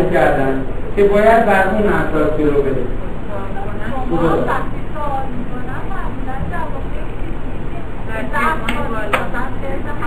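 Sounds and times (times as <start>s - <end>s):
steady room noise: 0.0s - 10.0s.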